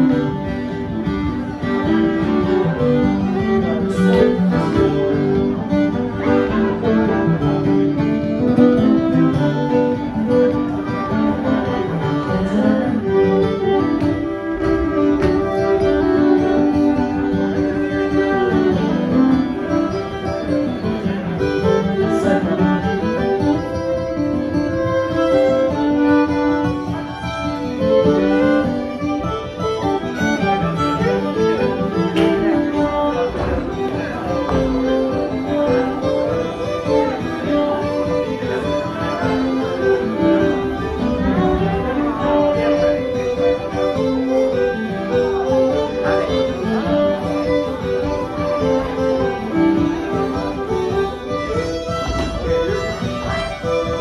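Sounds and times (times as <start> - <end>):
acoustic guitar accompaniment: 0.0 - 54.0
fiddles playing dance tune: 0.0 - 54.0.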